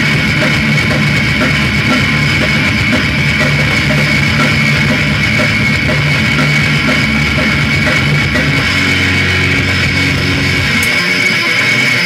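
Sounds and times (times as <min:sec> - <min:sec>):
distorted guitar: 0:00.0 - 0:12.0
fast driving drum kit: 0:00.0 - 0:12.0.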